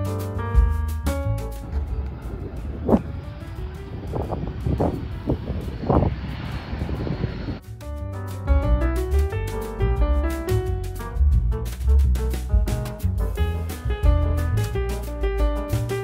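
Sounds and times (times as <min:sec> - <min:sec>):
piano background music: 0:00.0 - 0:16.0
wind buffeting microphone: 0:01.2 - 0:07.6.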